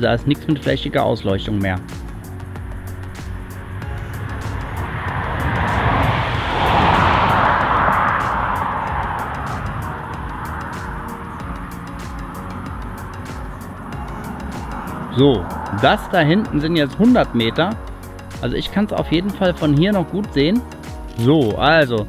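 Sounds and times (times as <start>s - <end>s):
faint background music: 0.0s - 22.0s
vehicle passing: 0.0s - 22.0s.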